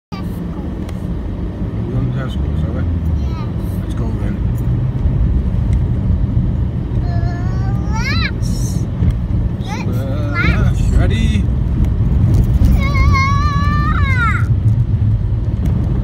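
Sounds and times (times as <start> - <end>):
diesel engine and road noise: 0.1 - 16.0.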